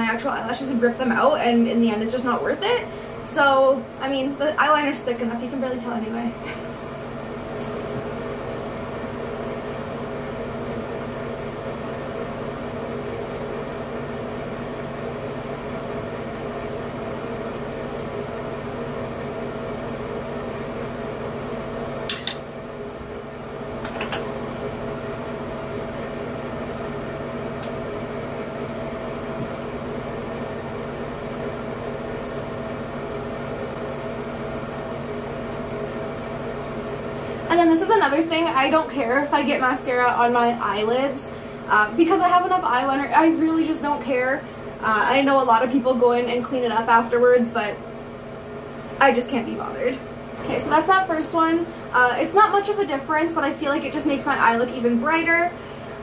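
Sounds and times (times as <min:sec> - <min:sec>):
fan unit humming: 0:00.0 - 0:56.0.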